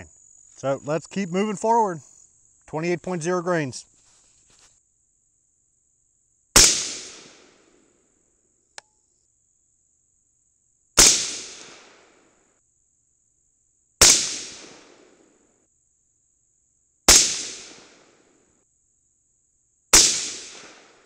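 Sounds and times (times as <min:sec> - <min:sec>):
high insect trill: 0:00.0 - 0:21.0
rifle shots with echo: 0:06.6 - 0:07.6, 0:11.0 - 0:12.2, 0:14.0 - 0:15.2, 0:17.1 - 0:18.1, 0:20.0 - 0:21.0
faint click: 0:08.7 - 0:09.0.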